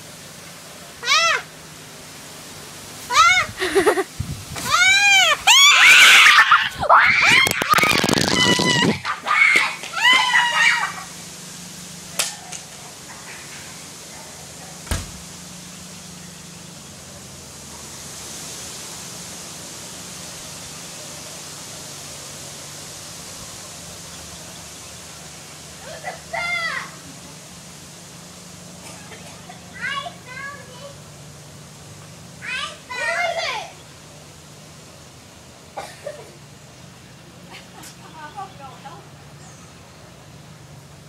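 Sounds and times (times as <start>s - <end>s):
high-pitched screams of fright: 1.0s - 1.5s, 3.1s - 3.9s, 4.6s - 11.1s, 25.8s - 27.0s.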